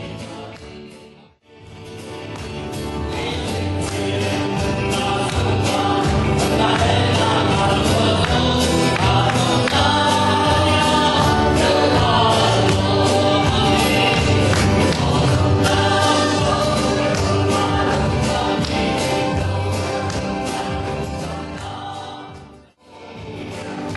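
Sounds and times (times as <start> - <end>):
acoustic guitar strumming: 0.0 - 23.9
man singing: 2.8 - 23.9.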